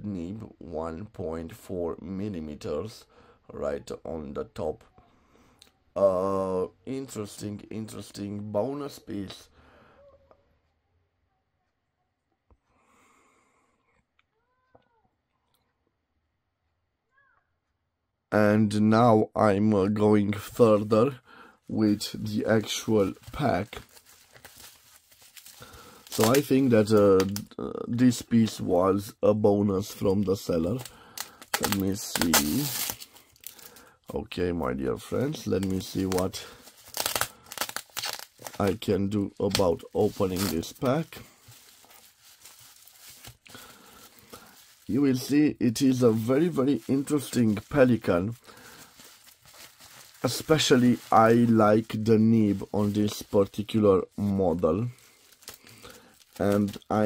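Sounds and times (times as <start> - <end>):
faint cat meow: 14.3 - 15.2, 17.1 - 17.5
bubble wrap crinkling: 21.7 - 28.7, 29.8 - 34.0, 34.7 - 57.0.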